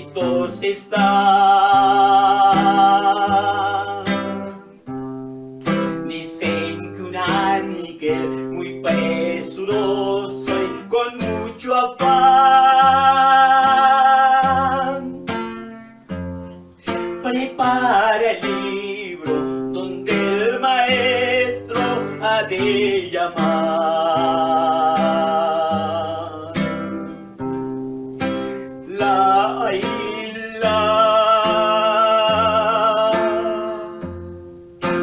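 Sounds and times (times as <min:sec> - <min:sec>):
man singing: 0:00.0 - 0:04.8, 0:05.6 - 0:15.6, 0:16.8 - 0:27.1, 0:28.7 - 0:34.2
strummed acoustic guitar: 0:00.0 - 0:35.0.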